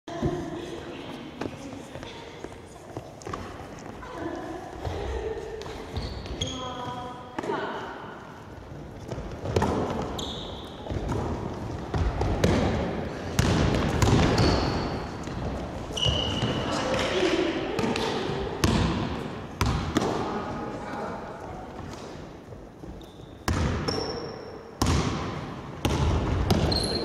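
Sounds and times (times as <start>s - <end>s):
players' voices echoing: 0.1s - 22.8s
sneaker squeaks: 0.3s - 7.3s, 9.0s - 12.1s, 14.0s - 17.3s, 22.8s - 24.9s, 25.8s - 27.0s
basketball bouncing: 9.1s - 10.2s, 10.8s - 17.1s, 17.8s - 20.3s, 23.5s - 24.2s, 24.8s - 26.8s.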